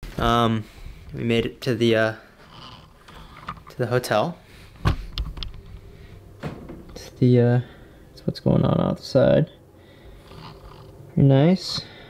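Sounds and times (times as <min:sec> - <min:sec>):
low room hum: 0:00.1 - 0:12.0.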